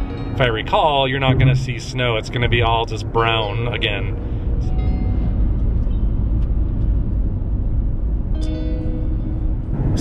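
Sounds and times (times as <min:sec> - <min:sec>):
car road and engine rumble: 0:00.0 - 0:10.0
sustained musical notes: 0:01.1 - 0:03.0.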